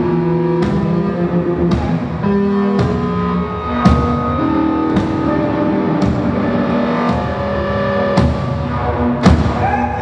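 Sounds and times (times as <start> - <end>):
droning guitar and electronics: 0.0 - 10.0.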